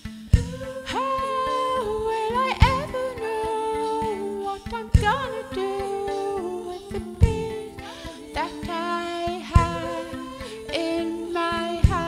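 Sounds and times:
looped vocal lines: 0.0 - 12.0
woman singing long wordless notes: 0.4 - 12.0.

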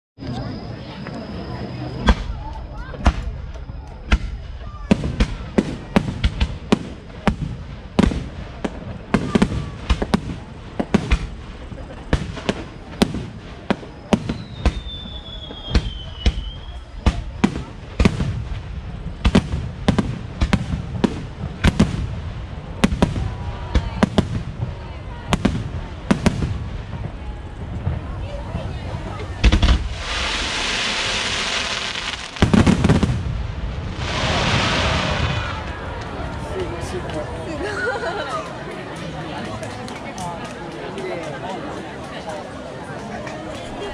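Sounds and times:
fireworks bangs: 2.0 - 37.3
firework whistle: 12.3 - 17.4, 29.5 - 33.1.

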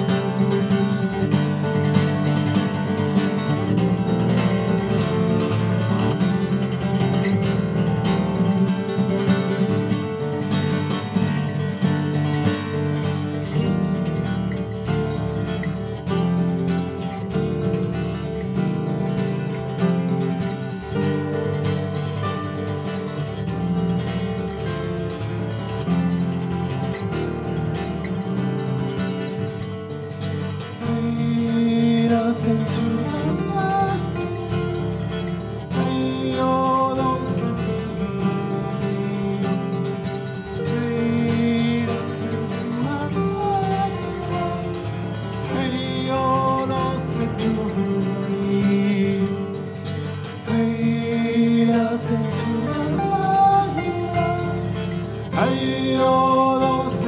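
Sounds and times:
fingerstyle acoustic guitar: 0.0 - 57.0
wordless singing: 0.0 - 57.0.

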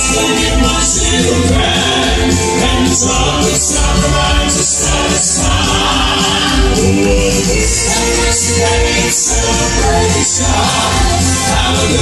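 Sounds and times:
male quartet singing in harmony: 0.0 - 12.0.

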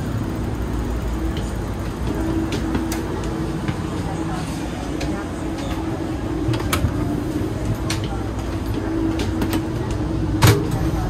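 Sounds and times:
train coach low rumble: 0.0 - 11.0.

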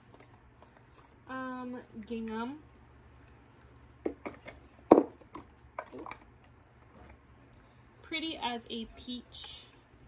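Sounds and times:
plastic bottles clacking together: 4.0 - 6.3.

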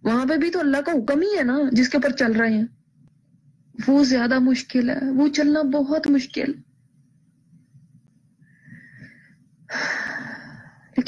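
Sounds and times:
woman speaking: 0.0 - 2.8, 3.8 - 6.7
woman breathing: 8.3 - 11.0.

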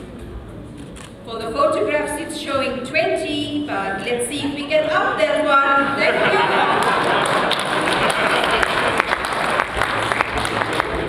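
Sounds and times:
audience applauding: 6.1 - 11.0.

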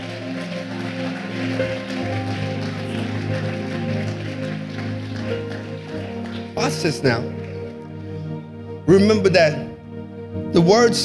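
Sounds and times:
congregation clapping: 0.0 - 8.2
church music with held chords: 0.0 - 11.0.

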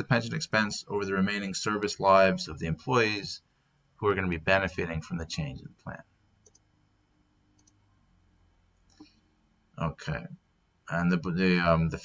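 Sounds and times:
computer mouse clicks: 6.4 - 6.7, 7.5 - 7.8.

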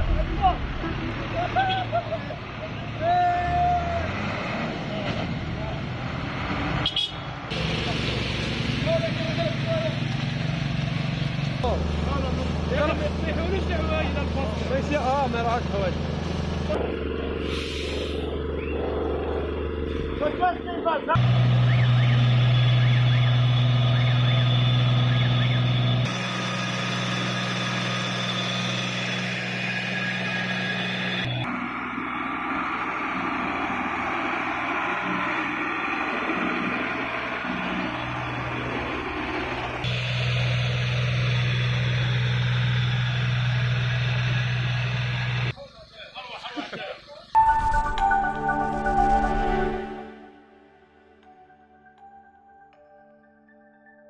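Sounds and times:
truck engine running: 0.0 - 3.1, 3.9 - 45.6
hiss: 17.4 - 18.3.

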